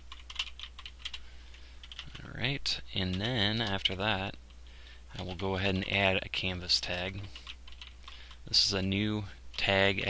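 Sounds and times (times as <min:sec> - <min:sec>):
computer keyboard typing: 0:00.0 - 0:01.2, 0:01.8 - 0:02.2, 0:03.0 - 0:04.0, 0:05.2 - 0:05.4, 0:07.2 - 0:08.4
low steady hum: 0:00.0 - 0:10.0.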